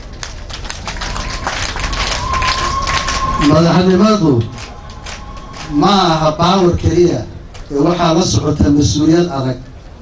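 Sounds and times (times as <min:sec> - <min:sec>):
audience applauding: 0:00.0 - 0:06.9
steady high tone: 0:00.5 - 0:07.6.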